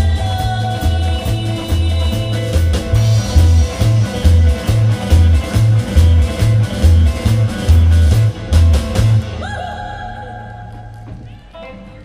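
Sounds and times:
live rock band playing: 0.0s - 12.0s.

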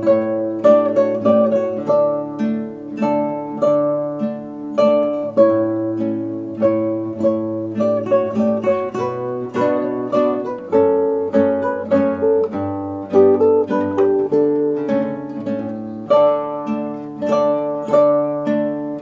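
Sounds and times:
classical guitar ensemble playing: 0.0s - 19.0s.

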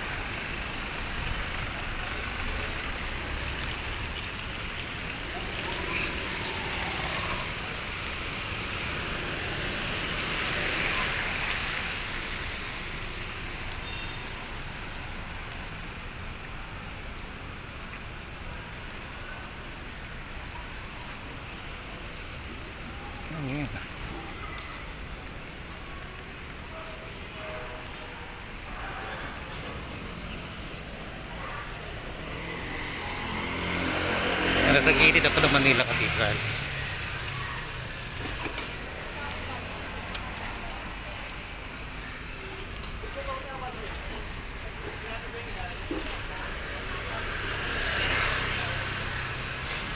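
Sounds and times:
rain: 0.0s - 49.9s
street noise: 0.0s - 49.9s
traffic on wet road: 0.0s - 49.9s.

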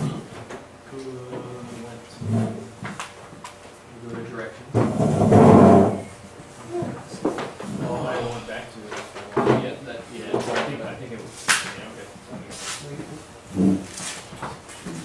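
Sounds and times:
indistinct conversation: 6.5s - 12.1s.

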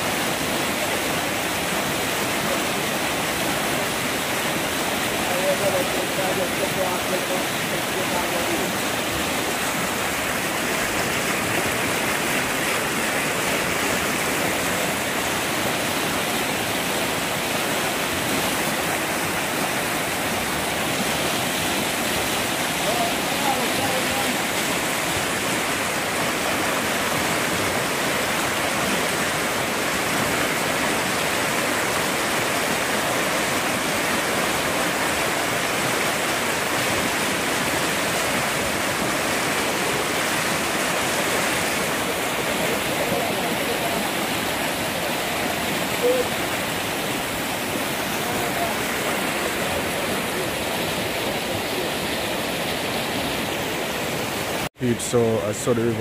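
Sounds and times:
river rushing over rocks: 0.0s - 56.0s.

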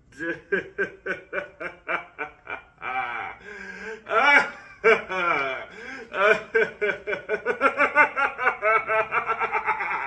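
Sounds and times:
man laughing hard: 0.1s - 10.0s.

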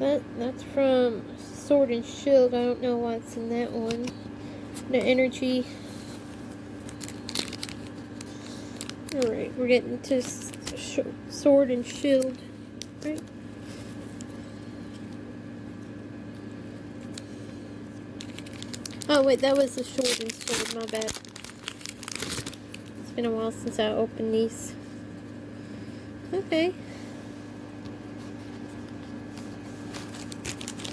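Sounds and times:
foil wrapper crinkling: 6.0s - 10.9s, 17.9s - 23.8s, 28.1s - 30.9s.

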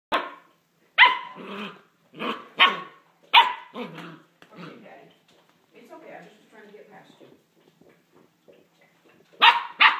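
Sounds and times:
puppy barking: 0.1s - 4.0s, 9.4s - 9.9s.

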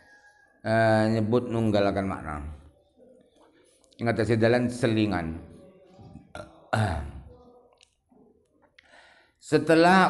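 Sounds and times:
man's throaty vocal sound: 6.3s - 7.3s.

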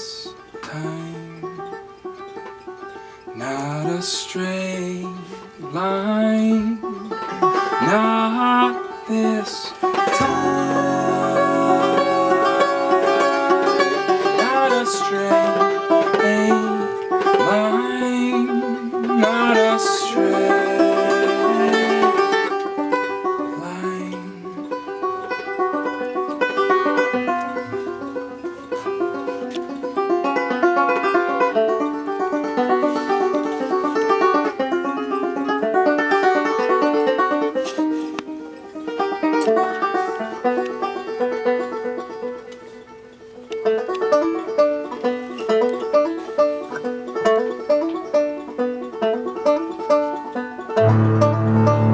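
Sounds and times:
banjo picking: 0.0s - 51.9s.

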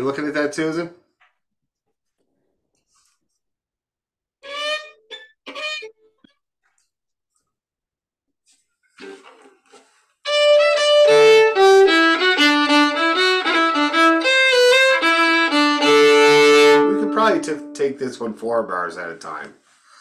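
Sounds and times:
solo fiddle playing: 4.4s - 5.9s, 10.2s - 18.6s.

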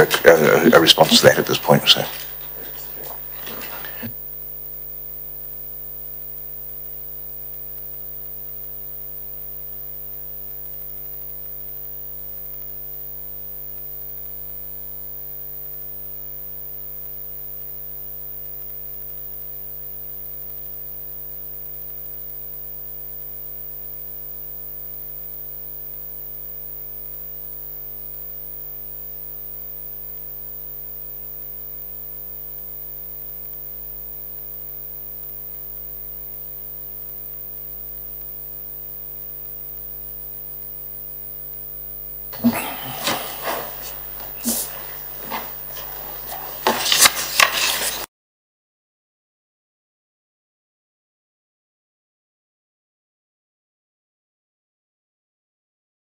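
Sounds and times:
steady electrical hum: 0.0s - 15.9s, 17.0s - 48.1s.

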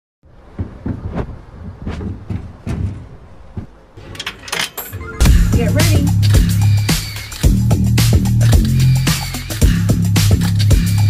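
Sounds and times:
coin slot clicks and thuds: 4.0s - 5.4s.

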